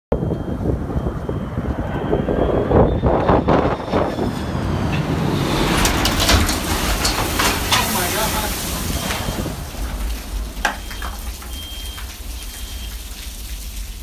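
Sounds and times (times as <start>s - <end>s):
jet engines rumbling overhead: 0.1s - 14.0s.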